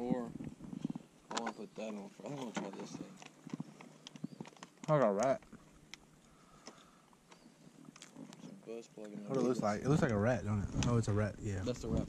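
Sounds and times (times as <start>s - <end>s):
clicks and taps of handling tackle: 1.3s - 10.2s.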